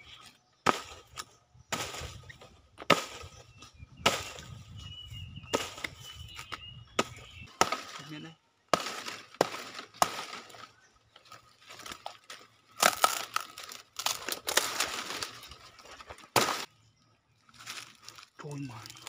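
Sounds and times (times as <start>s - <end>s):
hatchet chopping wood: 0.6s - 2.1s, 2.8s - 3.4s, 4.0s - 4.5s, 5.5s - 8.0s, 8.7s - 10.6s, 12.8s - 14.9s, 16.3s - 16.7s
wood cracking and splitting: 7.0s - 16.7s, 17.5s - 19.0s.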